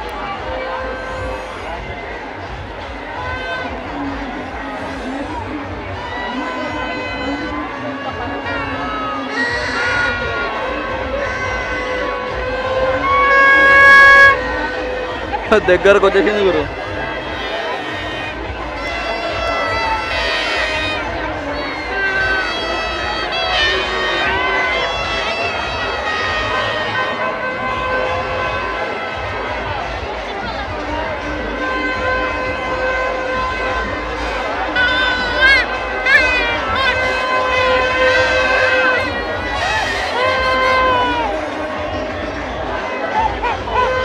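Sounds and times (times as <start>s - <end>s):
crowd voices and shouts: 0.0s - 44.0s
long held horn tones: 0.0s - 44.0s.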